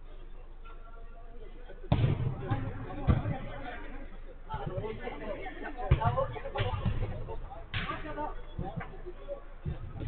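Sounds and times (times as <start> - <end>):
players' voices: 0.0 - 10.0
football kicked thump: 1.9 - 3.4, 5.9 - 8.0.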